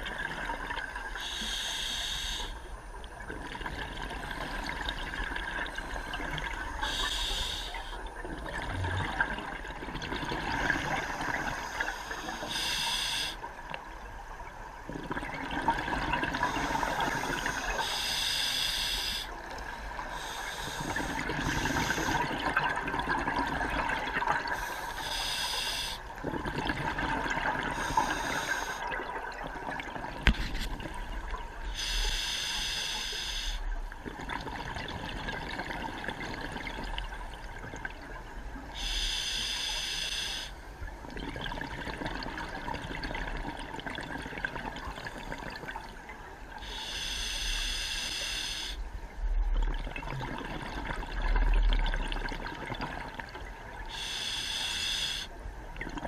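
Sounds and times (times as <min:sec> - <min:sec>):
steady watery hiss: 0:00.0 - 0:09.6, 0:10.2 - 0:29.0, 0:30.2 - 0:34.0, 0:38.2 - 0:41.0, 0:44.4 - 0:49.4, 0:53.2 - 0:55.8
diver breathing through regulator: 0:01.2 - 0:02.6, 0:06.8 - 0:08.0, 0:10.8 - 0:13.4, 0:16.4 - 0:19.3, 0:20.1 - 0:22.4, 0:24.5 - 0:26.1, 0:27.7 - 0:28.9, 0:31.7 - 0:33.6, 0:38.8 - 0:40.6, 0:46.6 - 0:48.8, 0:53.9 - 0:55.3.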